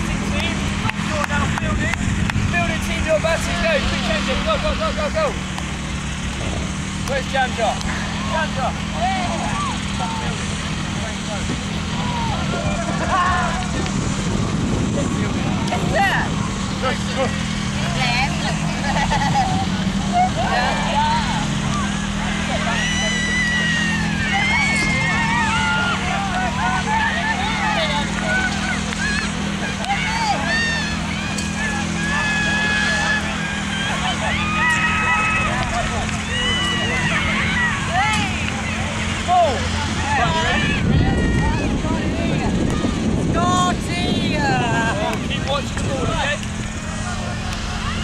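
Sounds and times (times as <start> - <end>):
people calling and shouting: 0.0 - 48.0.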